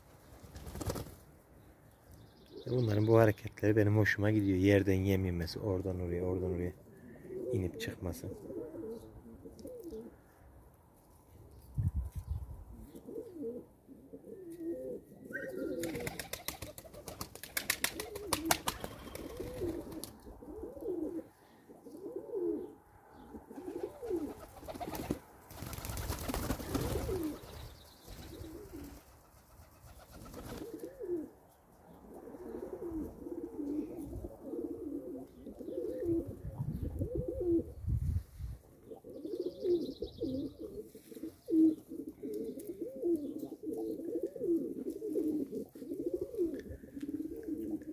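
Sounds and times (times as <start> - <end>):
pigeons cooing: 6.9 - 10.2, 12.7 - 29.1, 29.7 - 47.9.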